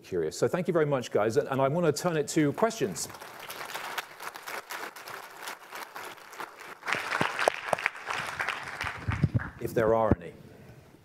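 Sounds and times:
audience applauding: 0:03.0 - 0:09.6.

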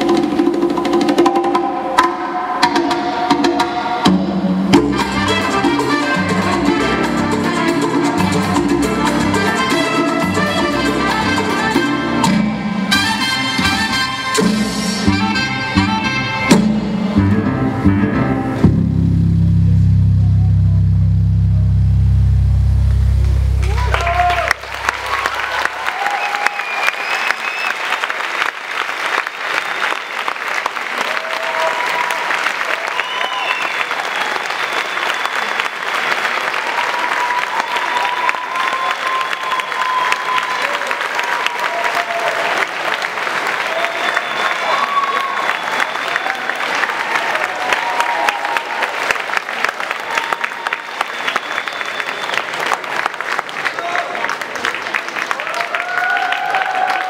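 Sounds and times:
music: 0:00.0 - 0:25.6
audience applauding: 0:23.6 - 0:57.0.

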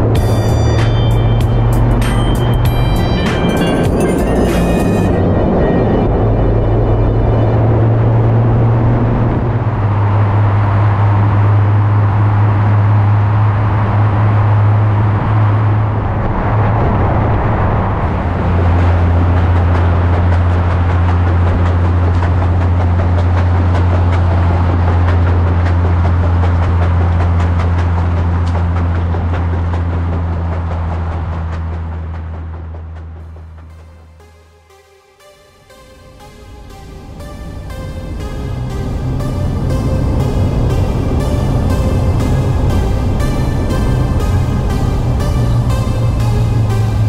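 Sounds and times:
car engine drone: 0:00.0 - 0:47.0
road and tyre noise: 0:00.0 - 0:47.0.

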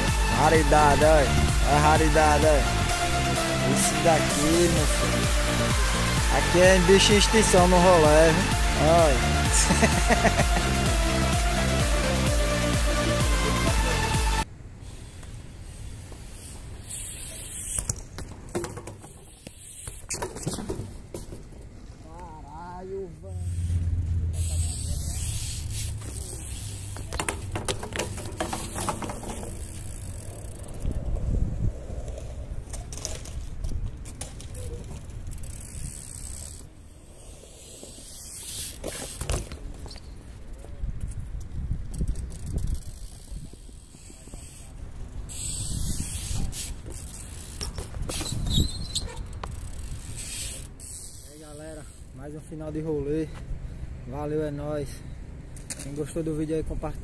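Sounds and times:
wind buffeting microphone: 0:30.6 - 0:32.7, 0:40.6 - 0:44.0, 0:44.8 - 0:46.9.

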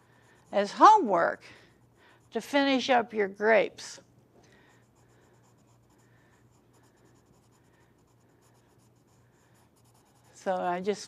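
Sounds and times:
pencil scratching on paper: 0:00.0 - 0:03.1, 0:04.6 - 0:11.0
low steady hum: 0:00.0 - 0:11.0.

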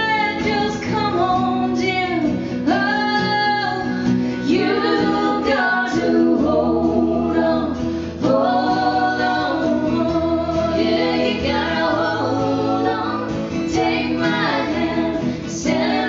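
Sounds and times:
acoustic guitar: 0:00.0 - 0:16.0
lap steel guitar: 0:00.0 - 0:16.0
woman singing country song: 0:00.0 - 0:16.0.

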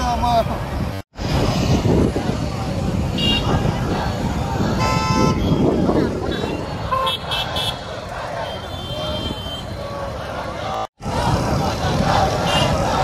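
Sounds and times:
crowd voices: 0:00.0 - 0:13.0
road traffic: 0:00.0 - 0:13.0
vehicle horns tooting: 0:03.1 - 0:03.6, 0:04.7 - 0:10.1, 0:12.4 - 0:12.8.

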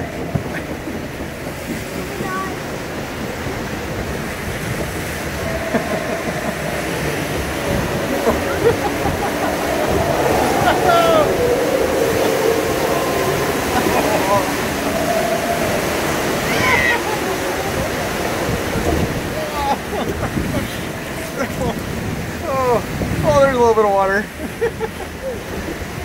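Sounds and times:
whitewater rushing: 0:00.0 - 0:26.0
people calling out: 0:05.2 - 0:21.8.

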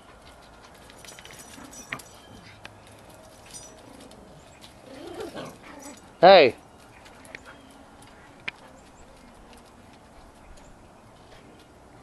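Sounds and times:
dog whining: 0:03.9 - 0:06.1.

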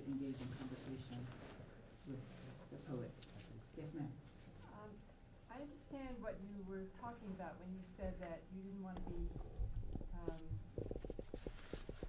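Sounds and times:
woman saying um: 0:04.6 - 0:10.8.

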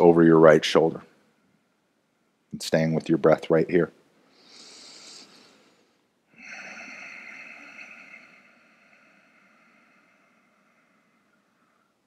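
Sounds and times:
short breath: 0:04.2 - 0:12.0
long hissing breath through throat: 0:04.3 - 0:12.0.

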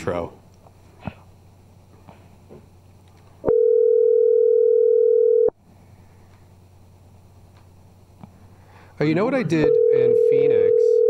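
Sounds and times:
telephone ringback tone: 0:03.5 - 0:05.5, 0:09.6 - 0:11.0.

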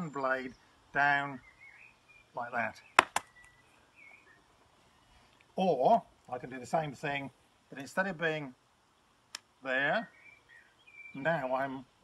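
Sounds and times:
faint bird chirps: 0:00.0 - 0:05.1, 0:09.8 - 0:11.7
sharp smacks: 0:03.0 - 0:03.3.

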